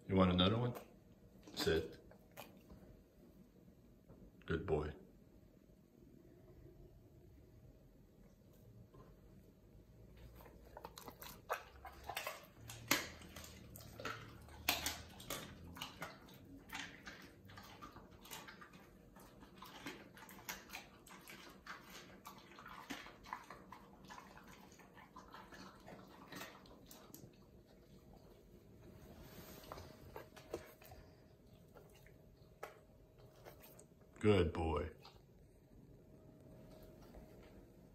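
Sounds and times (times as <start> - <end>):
dog chewing meat: 10.0 - 34.1.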